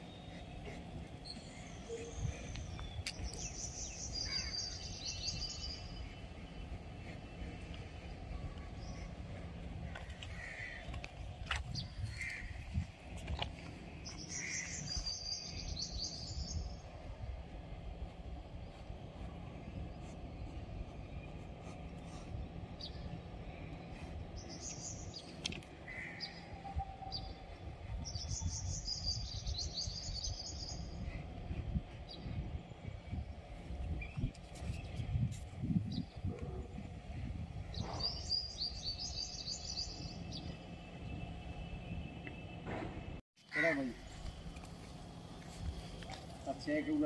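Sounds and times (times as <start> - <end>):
small birds chirping: 0.0 - 42.6
steady low rumble: 0.0 - 43.2.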